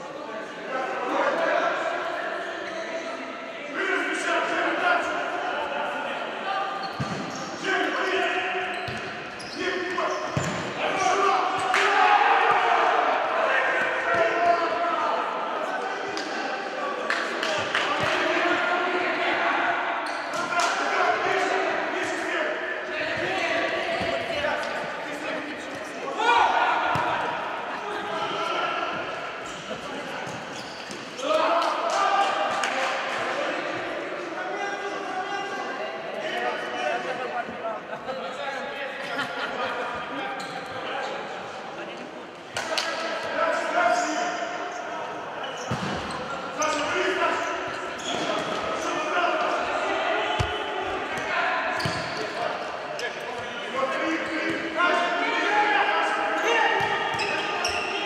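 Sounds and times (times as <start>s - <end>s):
voices echoing in large hall: 0.0s - 58.0s.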